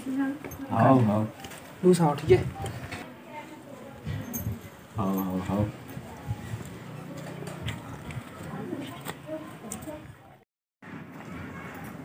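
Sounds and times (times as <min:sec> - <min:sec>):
low background voices: 0:00.0 - 0:10.4.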